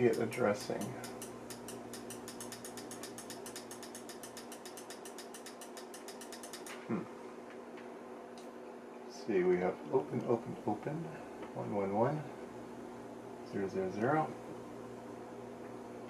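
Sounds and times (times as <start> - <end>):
fast mechanical ticking: 0.0 - 6.8
steady low hum: 0.0 - 16.0.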